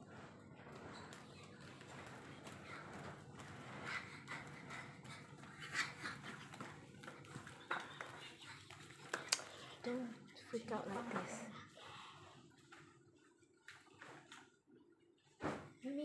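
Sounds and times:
footsteps on tiled floor: 0.0 - 11.9
faint whispering voices: 0.7 - 12.5.

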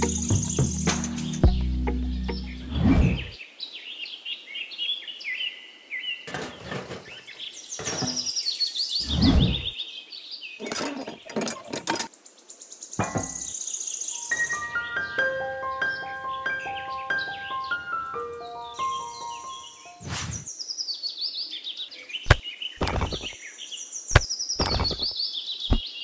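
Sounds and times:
birds chirping: 0.0 - 4.2, 4.9 - 26.0
plastic tray knocking and scraping: 6.3 - 8.4, 22.3 - 23.3.

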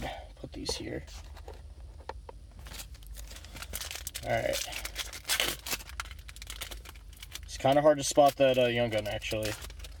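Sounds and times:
steady low hum: 0.0 - 10.0
foil wrapper crinkling: 2.6 - 10.0.

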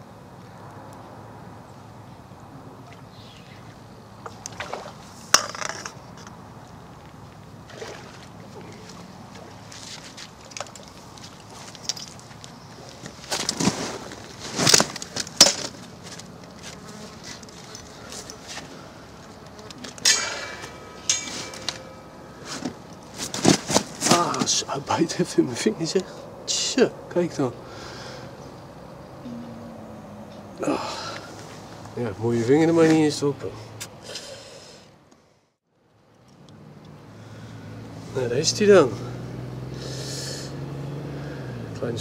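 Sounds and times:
water splashing: 4.3 - 5.4, 7.6 - 10.9
knocks and rustles of fishing gear: 7.1 - 24.6.

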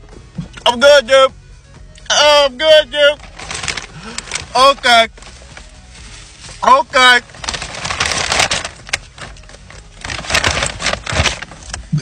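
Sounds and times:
paper bag rustling and crinkling: 3.0 - 12.0.

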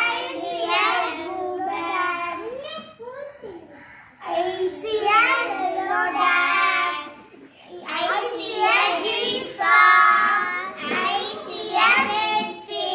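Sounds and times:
girls singing together: 0.0 - 2.4, 4.2 - 12.9.

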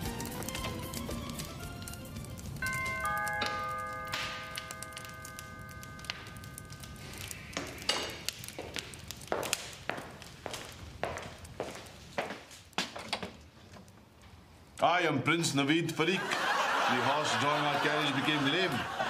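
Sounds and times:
footsteps: 0.0 - 13.9.

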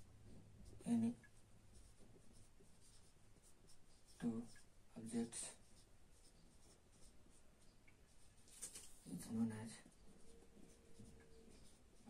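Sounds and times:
marker squeaking on whiteboard: 10.2 - 12.0.

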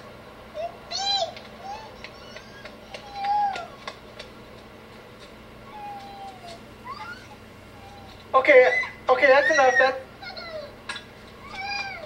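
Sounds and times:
playground swing squeaking: 5.7 - 10.4.

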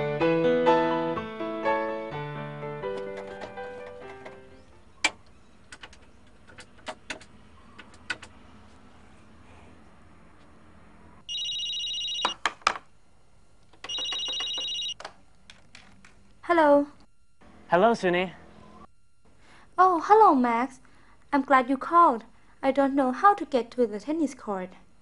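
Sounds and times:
piano music: 0.0 - 4.8
telephone ringing: 11.3 - 12.4, 13.8 - 15.0.

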